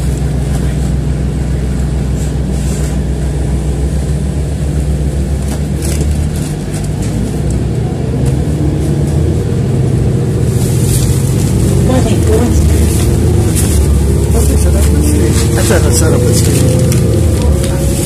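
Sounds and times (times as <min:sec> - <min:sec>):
bus engine and road drone: 0:00.0 - 0:18.0.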